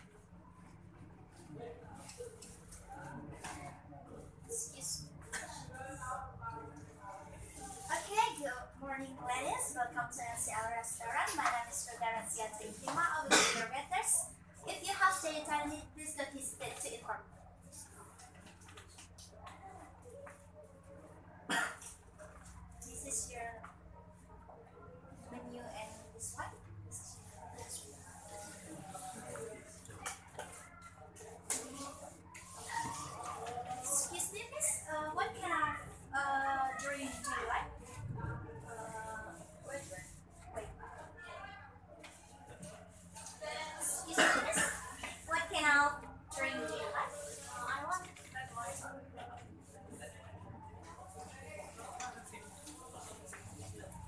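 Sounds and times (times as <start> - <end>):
faint murmur of voices: 0.0 - 54.0
person coughing: 13.2 - 13.7, 44.1 - 44.9
woman's voice: 33.8 - 41.6, 43.4 - 50.2.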